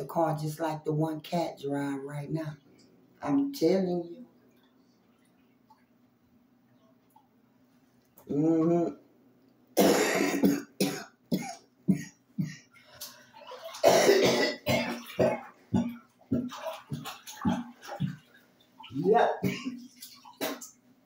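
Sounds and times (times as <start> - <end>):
person coughing: 9.8 - 12.7, 13.8 - 15.4, 19.4 - 19.8.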